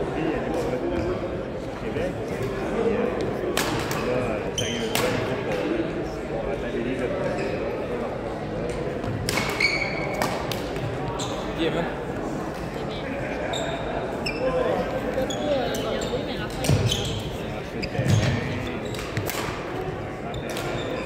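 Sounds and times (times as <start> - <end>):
voices in a hall: 0.0 - 21.0
sneakers squeaking on hardwood floor: 4.5 - 5.2, 9.6 - 10.2, 11.1 - 11.6, 13.4 - 19.2, 20.3 - 21.0.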